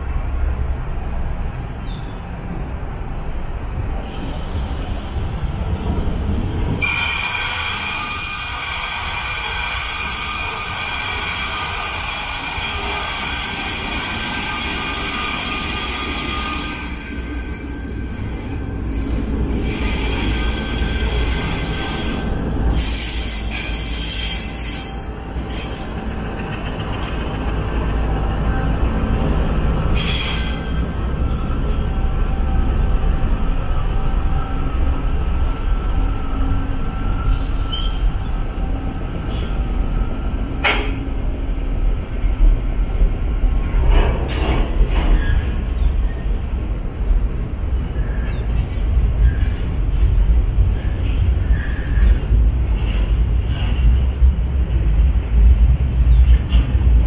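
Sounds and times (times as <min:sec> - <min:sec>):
locomotive engine rumbling: 0:05.1 - 0:57.0
train clatter: 0:05.9 - 0:32.2, 0:40.4 - 0:57.0
train wheels squealing: 0:06.8 - 0:29.3, 0:29.9 - 0:41.0, 0:43.7 - 0:46.4, 0:47.9 - 0:53.8.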